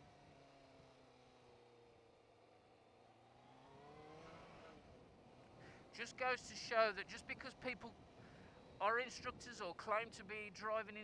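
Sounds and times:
motorcycle engine accelerating: 0:03.0 - 0:06.0.

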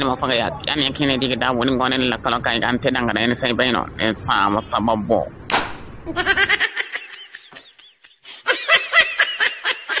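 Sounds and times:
person snickering laughs: 0:06.1 - 0:10.0.

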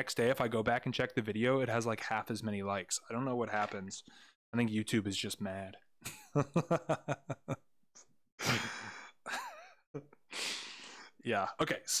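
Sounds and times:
man laughing: 0:06.0 - 0:10.2
breathy sigh: 0:08.4 - 0:09.3.

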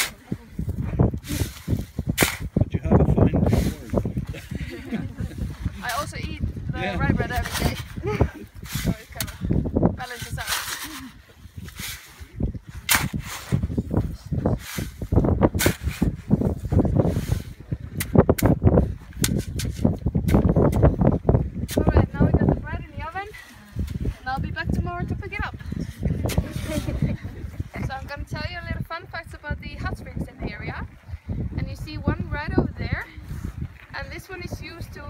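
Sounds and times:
people laughing: 0:04.2 - 0:05.8, 0:26.3 - 0:27.5
shovel scraping wet gravel: 0:08.6 - 0:09.4, 0:10.0 - 0:13.6, 0:14.5 - 0:15.0, 0:26.3 - 0:27.0.

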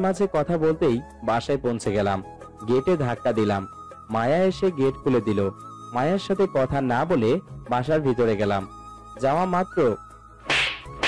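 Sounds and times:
soft background music: 0:00.0 - 0:11.0
hand slapping a cheek: 0:10.4 - 0:11.0.

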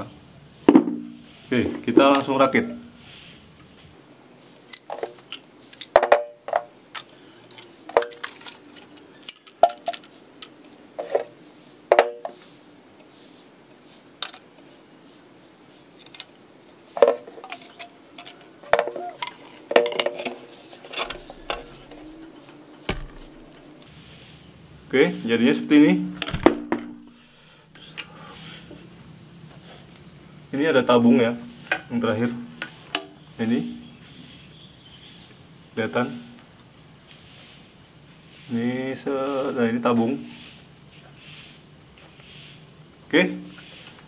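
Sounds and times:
pipe fittings clinking: 0:20.8 - 0:23.8, 0:26.2 - 0:27.2.

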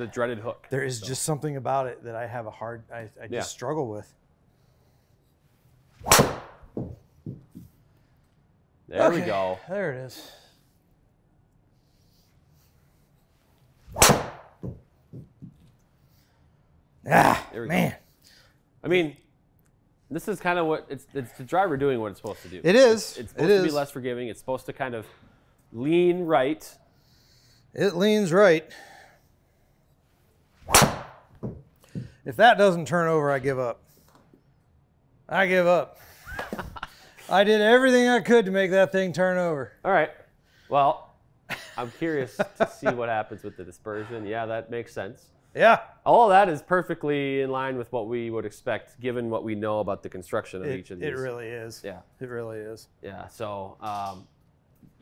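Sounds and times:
golf club swing swish: 0:06.0 - 0:06.6, 0:13.9 - 0:14.5, 0:30.6 - 0:31.2
golf club striking ball: 0:06.0 - 0:07.0.

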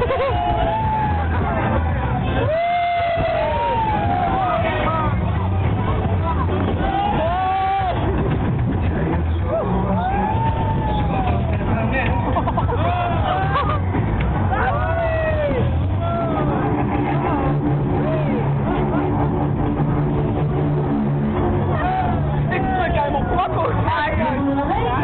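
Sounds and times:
loud fairground music with bass: 0:00.0 - 0:25.0.

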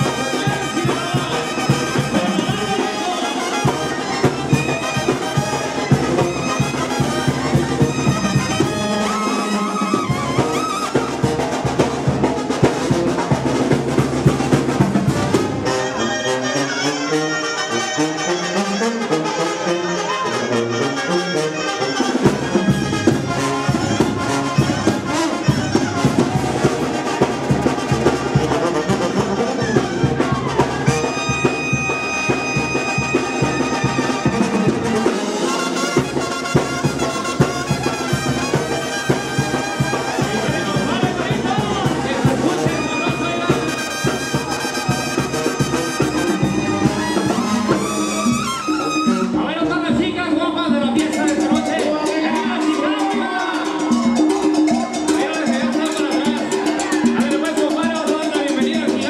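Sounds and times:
low brass notes: 0:00.0 - 0:11.9, 0:14.8 - 0:49.4
brass band playing: 0:00.0 - 0:59.0.

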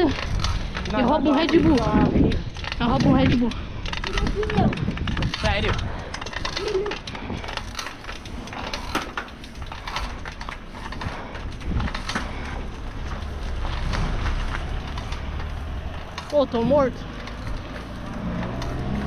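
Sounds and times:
rattling clicks: 0:00.0 - 0:19.0
tyre noise on asphalt: 0:00.0 - 0:19.0
wind rumbling on microphone: 0:00.0 - 0:19.0.

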